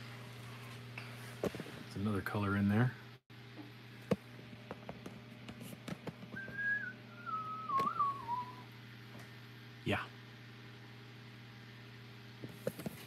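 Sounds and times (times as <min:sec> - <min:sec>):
person whistling: 0:06.4 - 0:08.7.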